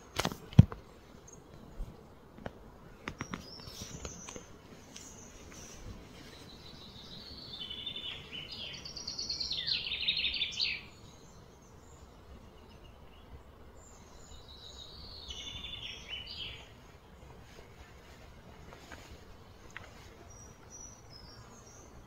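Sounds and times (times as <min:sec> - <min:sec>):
steady outdoor hum: 0:00.0 - 0:22.0.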